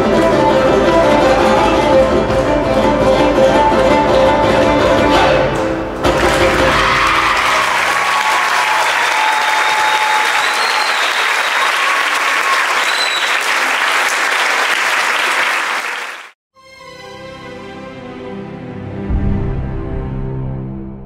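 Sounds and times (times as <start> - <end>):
audience applauding: 6.0 - 16.4
cheers and whistles: 6.5 - 14.1.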